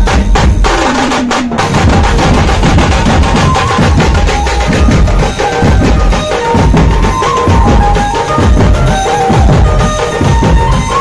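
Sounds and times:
large drums beaten with sticks: 0.0s - 11.0s.

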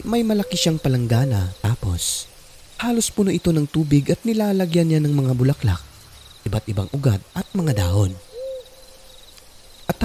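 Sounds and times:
faint cricket chirps: 0.0s - 10.0s
owl hooting: 0.1s - 1.8s, 7.5s - 9.2s.

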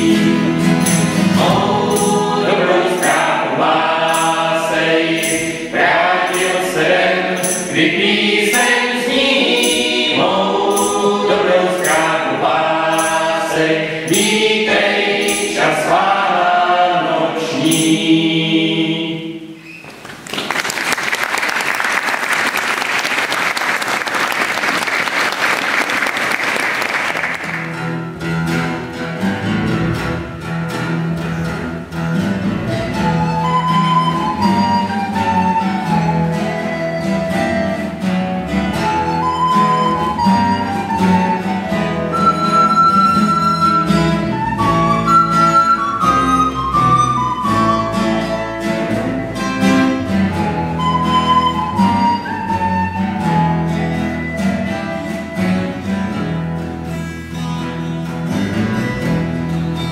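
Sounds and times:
double bass: 0.0s - 7.7s, 27.6s - 59.9s
strummed acoustic guitars: 0.0s - 19.7s, 24.5s - 59.9s
applause: 20.0s - 27.8s
recorder melody: 32.4s - 56.3s.

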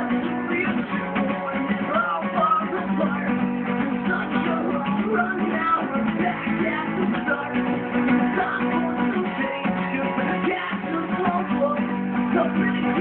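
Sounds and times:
acoustic guitar strumming: 0.0s - 13.0s
man singing: 0.0s - 13.0s.

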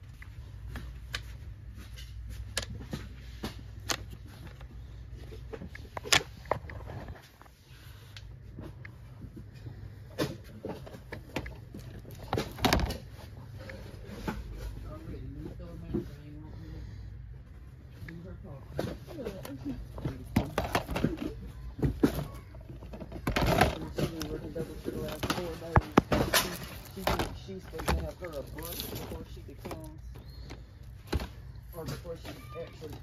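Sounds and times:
low steady hum: 0.0s - 33.0s
plastic basket clicking and clattering: 10.2s - 13.2s, 18.7s - 33.0s.

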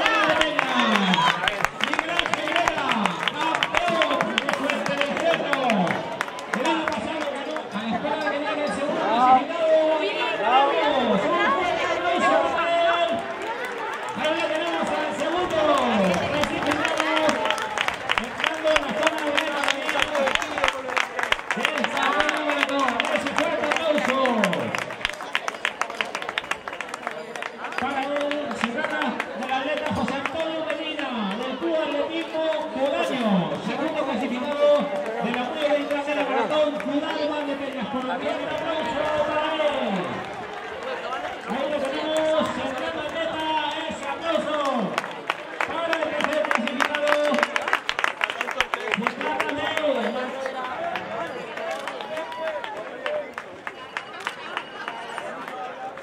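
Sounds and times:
spectators clapping: 0.0s - 9.3s, 10.8s - 56.0s
man speaking excitedly: 0.0s - 13.3s, 14.1s - 20.9s, 21.5s - 24.8s, 27.7s - 40.2s, 41.4s - 45.0s.

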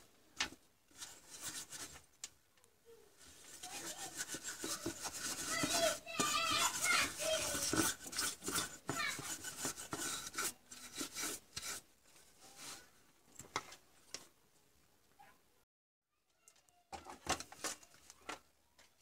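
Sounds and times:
high voice in background: 2.8s - 7.9s
stiff brush scrubbing circuit board: 3.2s - 11.9s.

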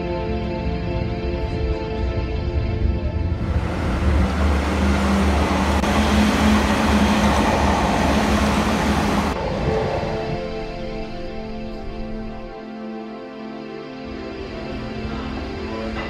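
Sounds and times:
music: 0.0s - 5.9s, 9.0s - 16.0s
electric train passing: 3.1s - 12.6s.

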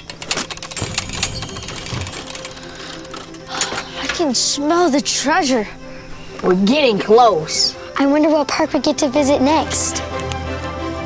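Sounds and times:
rapid clicking and ticking: 0.0s - 4.3s
light music: 0.0s - 11.0s.

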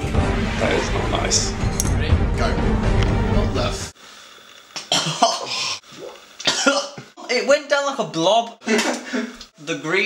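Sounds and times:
man coughing: 4.8s - 5.8s, 6.4s - 7.1s.

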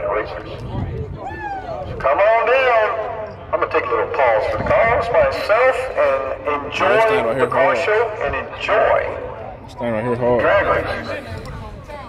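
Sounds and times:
man talking: 2.0s - 11.2s.

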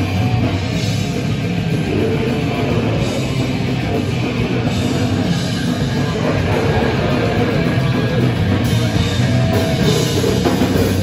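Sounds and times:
distorted guitars and bass: 0.0s - 11.0s
fast drums: 0.0s - 11.0s.

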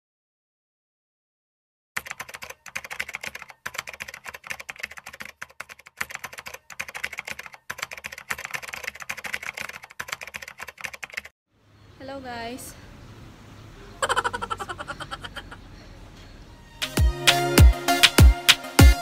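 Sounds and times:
keyboard typing clicks: 2.0s - 11.3s.

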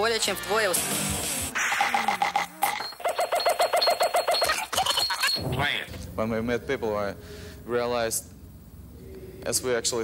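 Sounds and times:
rapidly pulsing alarm tone: 1.6s - 5.9s.

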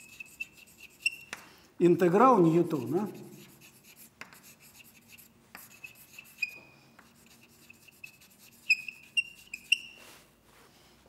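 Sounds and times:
chalk scratching on blackboard: 0.0s - 1.4s, 2.1s - 10.3s
high chalk squeaks: 0.0s - 1.5s, 2.4s - 10.3s.

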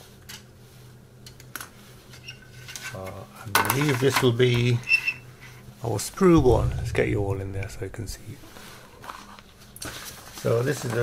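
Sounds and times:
faint steady hum: 0.0s - 10.4s.

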